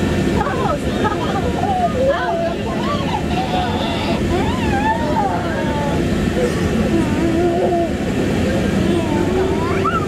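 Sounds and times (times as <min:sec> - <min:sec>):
low machinery noise: 0:00.0 - 0:10.0
indistinct voices: 0:00.2 - 0:10.0.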